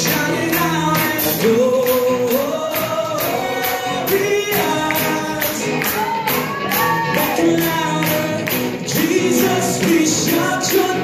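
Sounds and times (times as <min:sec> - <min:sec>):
bass: 0:00.0 - 0:11.0
drums with high hits: 0:00.0 - 0:11.0
electric guitars: 0:00.0 - 0:11.0
voices singing together: 0:00.0 - 0:11.0.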